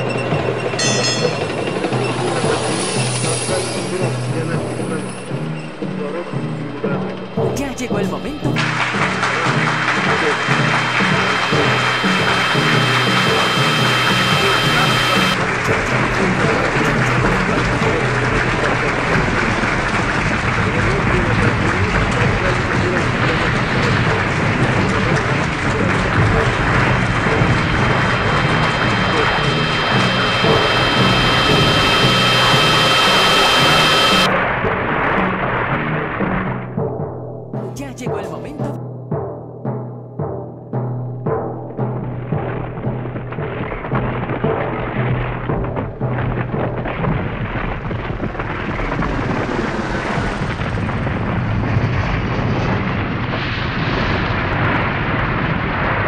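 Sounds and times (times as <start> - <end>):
distorted industrial noise music: 0.0 - 36.9.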